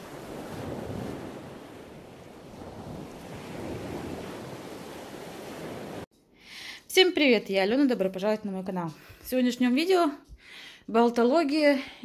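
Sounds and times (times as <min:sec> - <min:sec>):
ocean waves rushing: 0:00.0 - 0:06.1.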